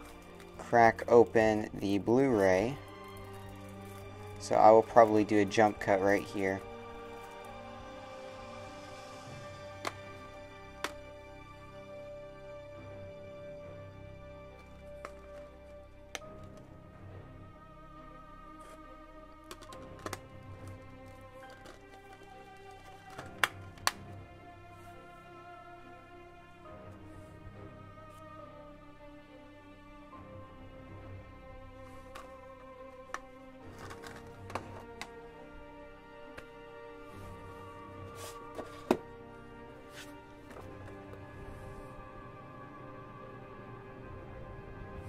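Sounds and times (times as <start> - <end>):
book handling sounds: 0.0 - 7.8, 9.2 - 11.0, 14.5 - 16.8, 19.4 - 25.0, 31.8 - 35.3, 36.2 - 42.0
music with held tones: 0.0 - 45.0
plastic case clicks: 9.8 - 10.0, 19.5 - 20.2, 33.1 - 35.2, 38.6 - 39.1.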